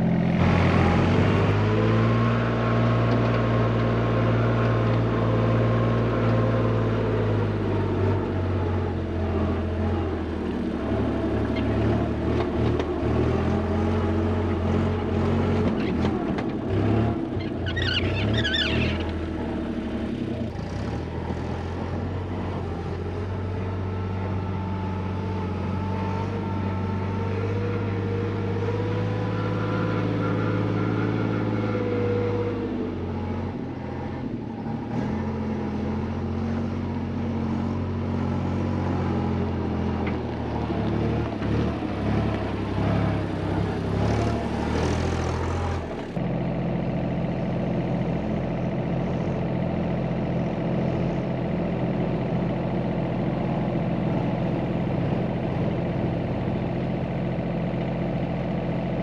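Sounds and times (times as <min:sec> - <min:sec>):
diesel engine running: 0:00.0 - 0:59.0.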